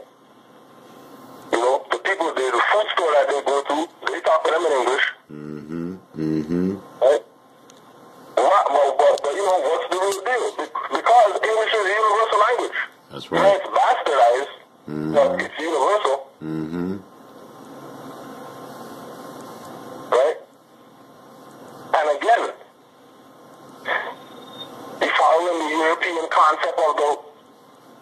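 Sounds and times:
steady hiss: 0:00.0 - 0:28.0
person talking: 0:01.5 - 0:07.2, 0:08.4 - 0:17.1.

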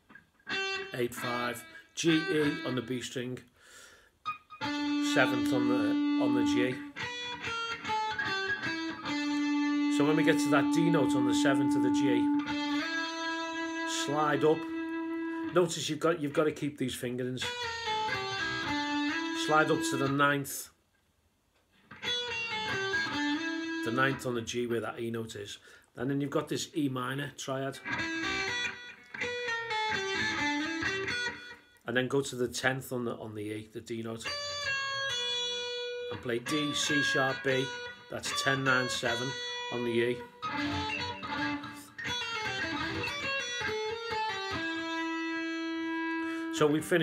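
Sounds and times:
electric guitar blues phrase: 0:00.0 - 0:03.2, 0:04.2 - 0:20.6, 0:21.9 - 0:25.2, 0:27.5 - 0:31.8, 0:33.9 - 0:47.0.

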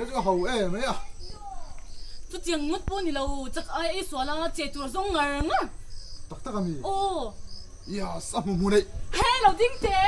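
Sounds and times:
high insect chirps: 0:00.0 - 0:10.0
woman talking: 0:02.3 - 0:05.8, 0:09.2 - 0:10.0.

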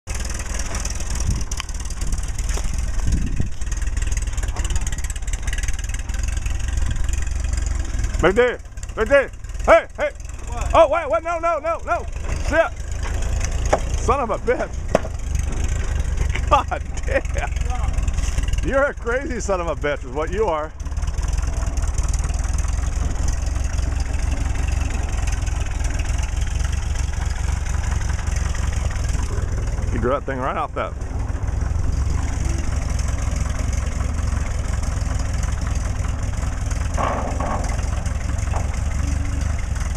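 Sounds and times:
tractor engine running: 0:00.0 - 0:39.9.

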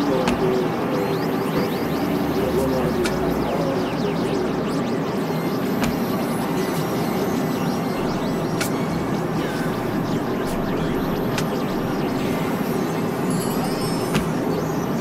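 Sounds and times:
dense experimental music: 0:00.0 - 0:15.0
faint drones: 0:00.0 - 0:15.0
sharp clicks: 0:01.6 - 0:03.6.

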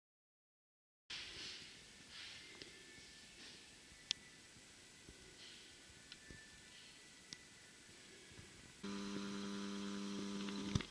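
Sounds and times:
low electrical hum: 0:01.1 - 0:10.9.

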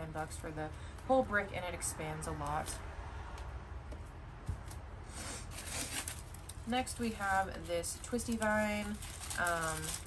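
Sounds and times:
plastic leaves rustling: 0:05.3 - 0:10.0.

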